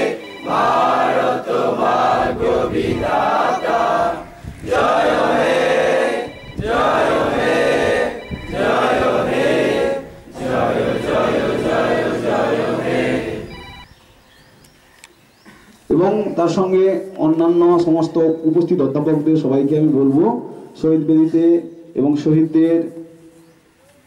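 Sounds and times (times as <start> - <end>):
group singing in unison: 0.0 - 13.7.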